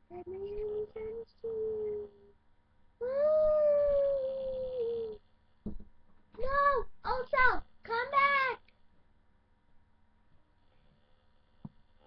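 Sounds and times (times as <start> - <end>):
child imitating wolf howl: 3.0 - 5.2
brief knock: 5.6 - 5.9.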